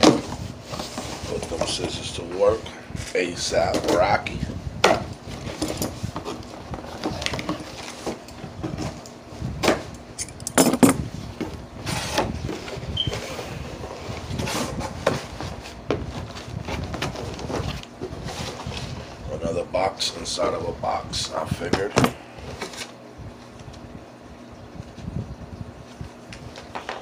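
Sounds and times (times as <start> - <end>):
cardboard rustling and scraping: 0.0 - 9.9, 10.9 - 19.3, 21.4 - 23.8.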